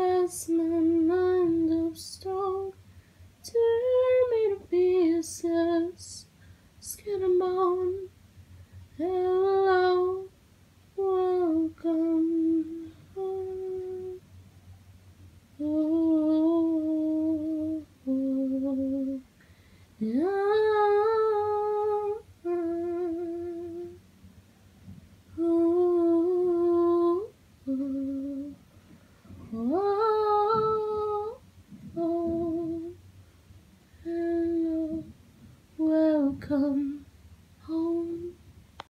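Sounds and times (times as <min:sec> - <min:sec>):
woman humming a slow melody: 0:11.0 - 0:14.2, 0:15.6 - 0:19.3, 0:20.0 - 0:24.0, 0:25.3 - 0:28.6, 0:29.3 - 0:33.0, 0:34.0 - 0:35.2, 0:35.8 - 0:37.0, 0:37.6 - 0:38.4.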